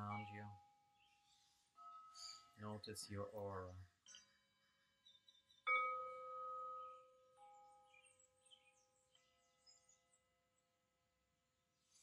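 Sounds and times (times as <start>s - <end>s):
softer chime tones: 0.0s - 4.3s, 5.6s - 10.0s
bell-like chime ringing: 5.7s - 8.2s.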